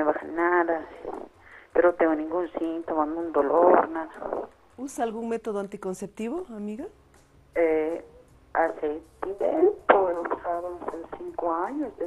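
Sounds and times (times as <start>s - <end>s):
woman talking over telephone: 0.0s - 6.9s, 7.6s - 12.0s.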